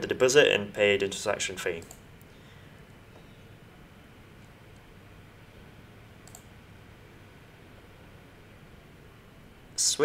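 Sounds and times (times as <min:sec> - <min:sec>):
low steady hum: 0:00.0 - 0:10.0
computer mouse click: 0:06.2 - 0:06.5.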